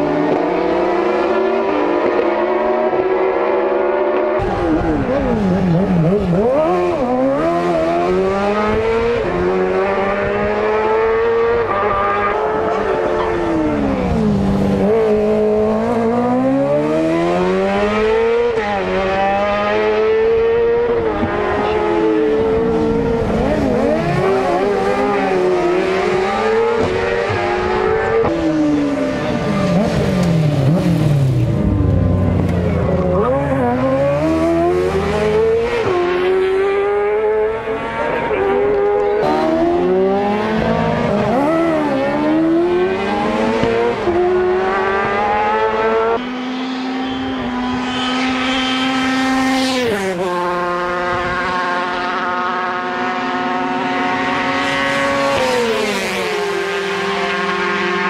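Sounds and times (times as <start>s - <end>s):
sidecar engines revving past: 0.0s - 58.0s.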